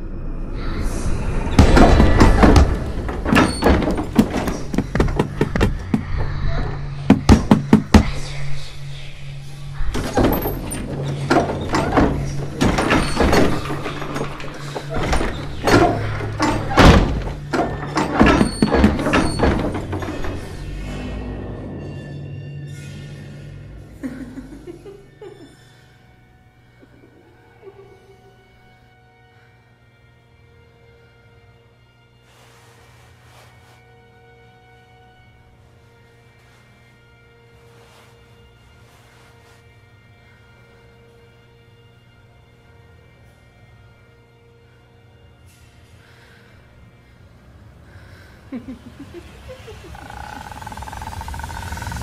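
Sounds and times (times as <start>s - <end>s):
low musical drone: 0.0s - 4.8s, 5.5s - 52.0s
film score with held tones: 0.0s - 52.0s
heavy knocking on a door: 1.6s - 6.3s, 7.0s - 8.2s
soft hissing noise: 32.2s - 34.2s, 35.7s - 39.9s.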